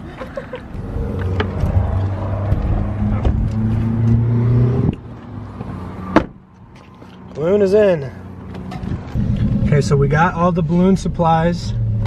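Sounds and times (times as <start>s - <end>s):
car engine running: 8.8s - 12.0s.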